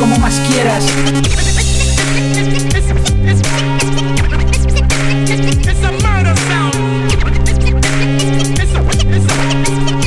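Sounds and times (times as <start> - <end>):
turntable scratching: 0.0 - 1.3
hip hop beat with drums and bass: 0.0 - 10.0.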